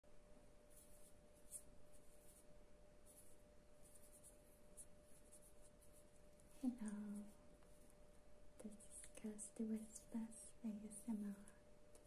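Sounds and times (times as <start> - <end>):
faint steady hum: 0.1 - 12.0.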